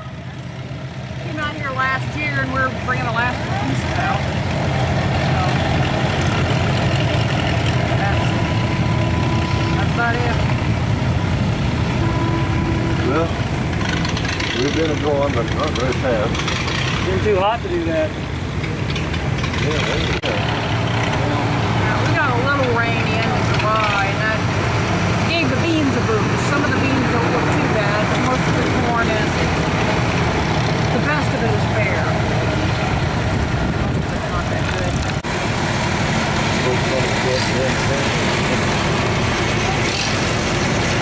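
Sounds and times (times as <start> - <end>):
engine idling: 0.0 - 41.0.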